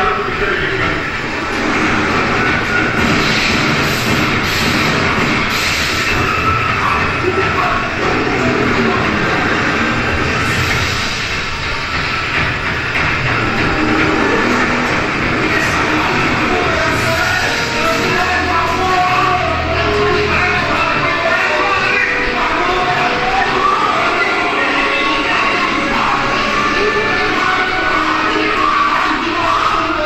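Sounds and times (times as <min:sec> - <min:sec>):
dense film soundtrack noise: 0:00.0 - 0:30.0.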